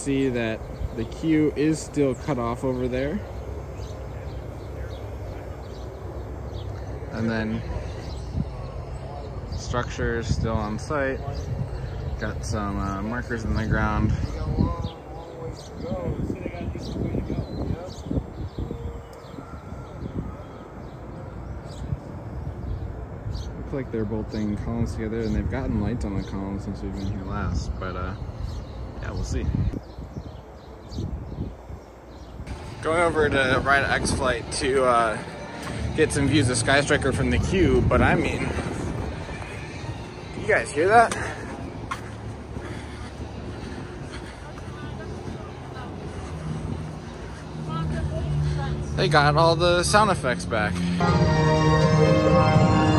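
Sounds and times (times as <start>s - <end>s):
wind buffeting microphone: 0.0s - 51.0s
steady low hum: 0.0s - 52.9s.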